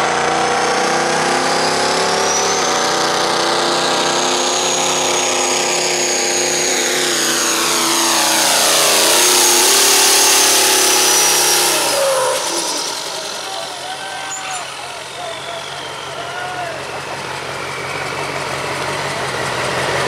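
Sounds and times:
diesel pickup engine revving: 0.0 - 20.0
high turbo whine: 0.0 - 20.0
voices talking: 12.2 - 19.5.

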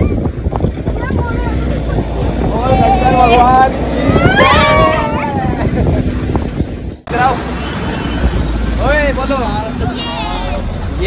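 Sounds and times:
wind buffeting microphone: 0.0 - 10.0
truck engine and road rumble: 0.0 - 11.0.

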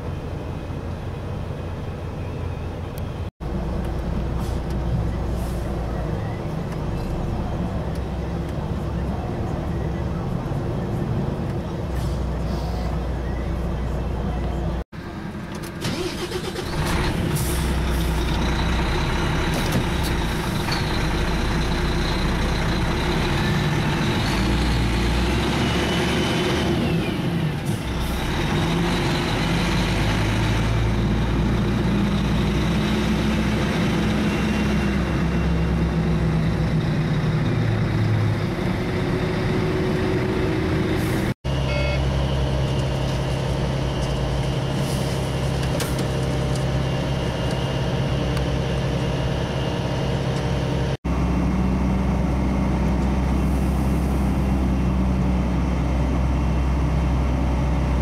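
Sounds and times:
truck diesel engine running: 3.4 - 58.0.

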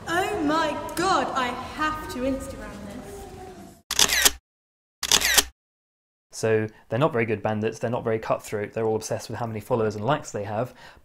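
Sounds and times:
camera shutter click: 3.9 - 4.4, 5.0 - 5.5.

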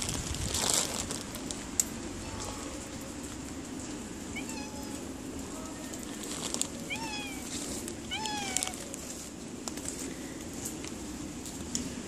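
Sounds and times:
cat meowing: 4.3 - 5.0, 6.8 - 8.9.

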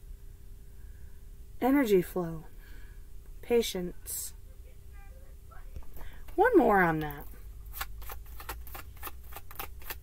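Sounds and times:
cards shuffling: 7.0 - 10.0.

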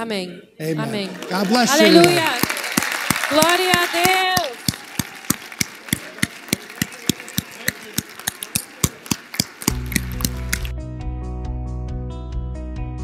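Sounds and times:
people clapping in rhythm: 1.0 - 10.7.

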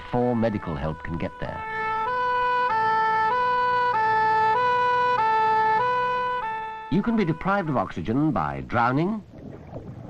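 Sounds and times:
ambulance two-tone siren: 0.0 - 8.0.

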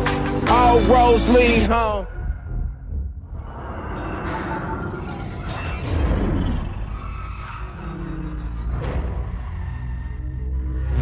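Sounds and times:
action film music: 0.0 - 11.0.

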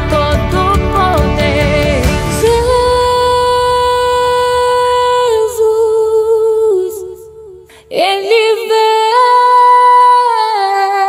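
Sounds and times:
woman singing gospel: 0.0 - 11.0.

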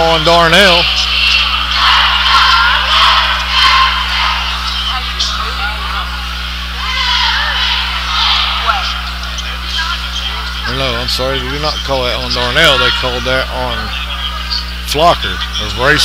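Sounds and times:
crowd shouting and chattering: 0.0 - 16.0
low electrical hum: 0.0 - 16.0.

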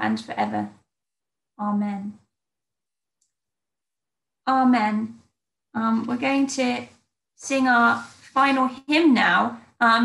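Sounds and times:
woman speaking: 0.0 - 0.8, 1.6 - 2.3, 4.5 - 5.2, 5.8 - 10.0.

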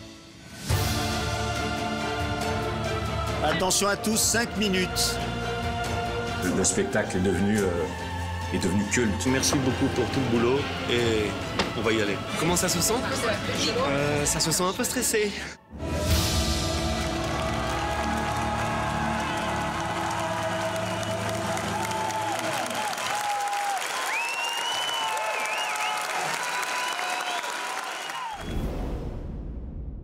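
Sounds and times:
audience applauding and cheering: 15.9 - 28.8.

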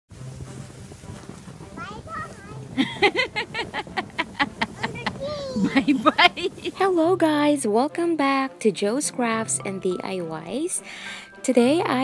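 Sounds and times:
cardboard box dragged through snow: 0.1 - 7.4
boots crunching through snow: 0.2 - 7.3.

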